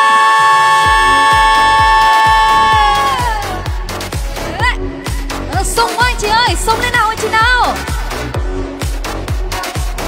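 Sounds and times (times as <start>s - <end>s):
dance kick drum: 0.7s - 10.0s.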